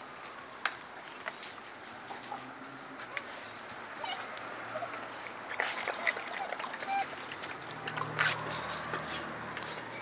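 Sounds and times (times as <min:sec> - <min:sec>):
puppies whimpering and yipping: 0:04.0 - 0:07.2.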